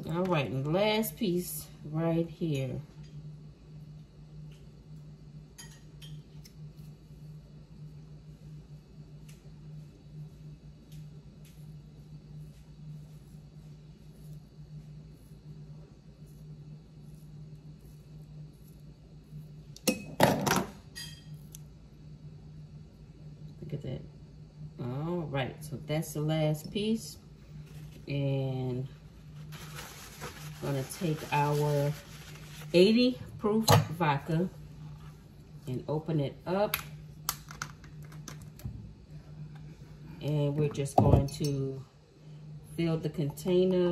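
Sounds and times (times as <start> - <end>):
steady low hum: 0.0 - 43.9.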